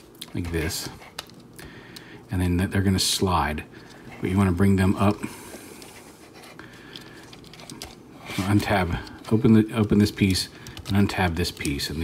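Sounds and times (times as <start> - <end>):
plastic parts clicking and scraping: 6.7 - 12.0.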